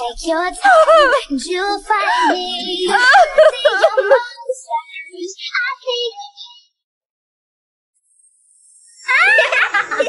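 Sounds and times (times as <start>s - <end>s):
high singing voice: 0.0s - 6.7s.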